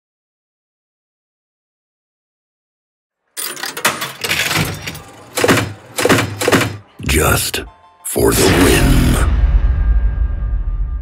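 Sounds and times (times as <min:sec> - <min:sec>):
slot machine clunks and rattles: 0:03.4 - 0:07.0.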